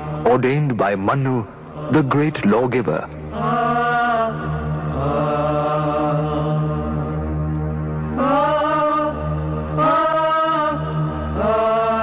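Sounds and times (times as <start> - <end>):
voice chanting slowly: 0.0 - 6.8.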